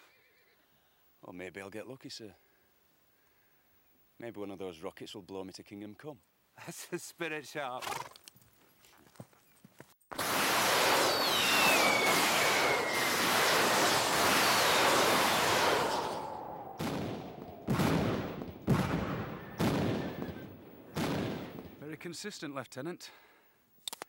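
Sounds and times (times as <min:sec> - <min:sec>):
rockets rushing hiss and whistle: 0:10.1 - 0:21.1
sharp bangs: 0:10.1 - 0:21.9.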